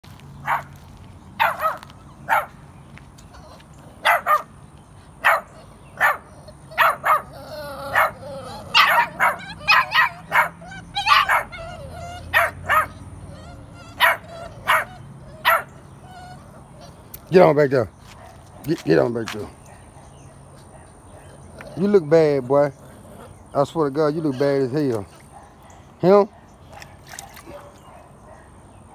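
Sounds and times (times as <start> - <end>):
puppies yapping: 0.4 - 28.9
puppy whiny cry: 3.3 - 4.5, 5.3 - 17.1.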